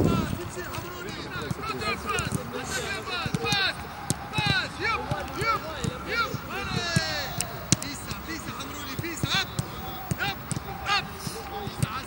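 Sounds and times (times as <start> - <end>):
footballs being kicked: 0.0 - 12.0
players shouting: 0.0 - 12.0.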